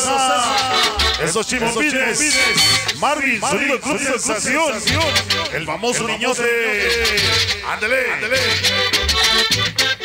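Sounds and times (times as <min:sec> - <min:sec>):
accordion melody: 0:00.0 - 0:10.0
stepping bass line: 0:00.0 - 0:10.0.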